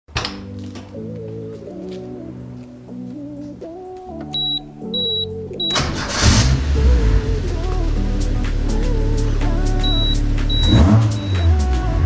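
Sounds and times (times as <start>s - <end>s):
short high beeps: 4.3s - 5.8s, 9.8s - 11.5s
car engine starting and idling: 4.4s - 12.0s.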